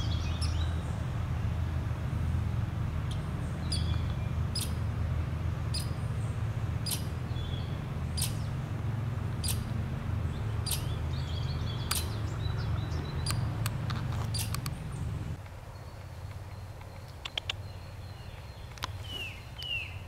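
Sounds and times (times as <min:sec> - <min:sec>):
rodent chip calls: 0:03.1 - 0:04.8, 0:05.7 - 0:06.0, 0:06.8 - 0:08.5, 0:09.4 - 0:09.7, 0:10.6 - 0:13.5, 0:14.3 - 0:14.6.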